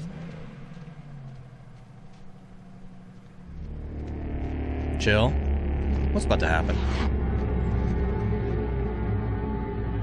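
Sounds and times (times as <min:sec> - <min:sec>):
car rumbling: 0:00.0 - 0:10.0
deep loud rumble: 0:03.5 - 0:10.0.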